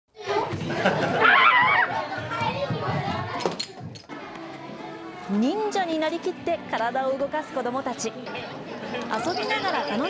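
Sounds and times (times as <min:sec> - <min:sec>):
children playing and chattering: 0:00.1 - 0:10.0.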